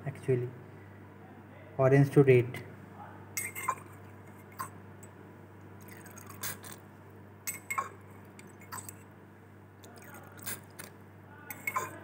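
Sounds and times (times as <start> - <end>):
low electrical hum: 0.0 - 12.0
glassware clinking: 3.4 - 4.7, 7.5 - 9.0, 11.5 - 12.0.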